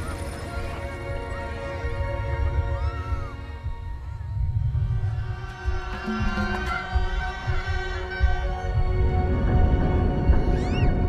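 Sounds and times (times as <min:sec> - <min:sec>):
ominous film score: 0:00.0 - 0:11.0
deep rumble: 0:00.1 - 0:11.0.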